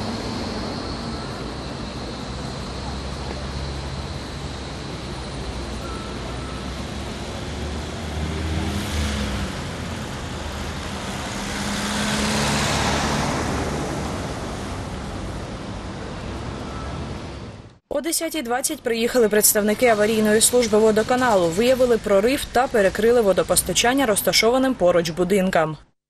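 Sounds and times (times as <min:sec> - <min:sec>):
road vehicles passing: 0:00.0 - 0:17.8, 0:19.1 - 0:25.4.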